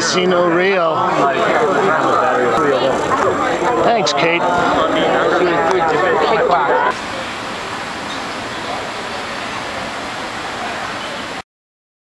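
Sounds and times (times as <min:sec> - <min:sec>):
city street hiss: 0:06.9 - 0:11.4.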